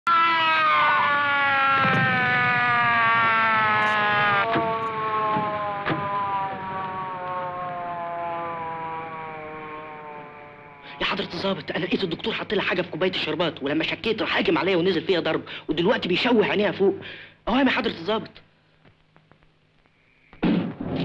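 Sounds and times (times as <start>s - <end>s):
police siren winding down: 0.1s - 12.2s
sharp knocks: 4.5s - 6.2s.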